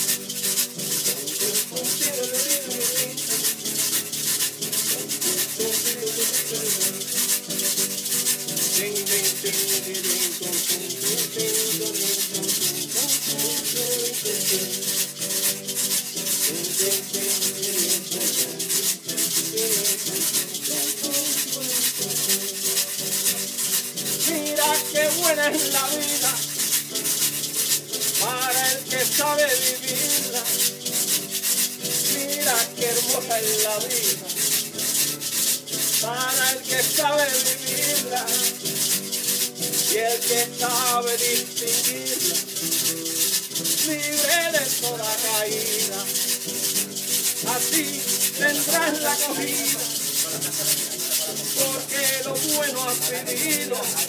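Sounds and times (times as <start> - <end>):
acoustic guitar chords and melody: 0.0 - 54.0
fast scraped percussion rhythm: 0.0 - 54.0.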